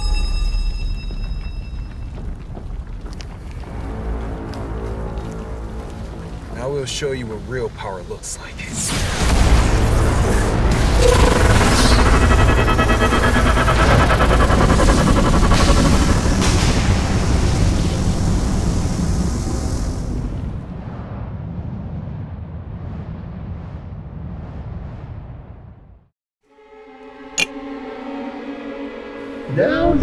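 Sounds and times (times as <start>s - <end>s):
music: 0.0s - 2.1s, 3.5s - 6.6s, 26.4s - 30.0s
deep rumbling blast: 8.9s - 26.0s.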